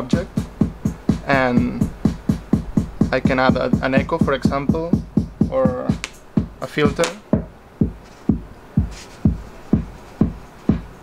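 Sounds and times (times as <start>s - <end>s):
drum machine kick: 0.0s - 11.0s
electronic loop: 0.0s - 11.0s.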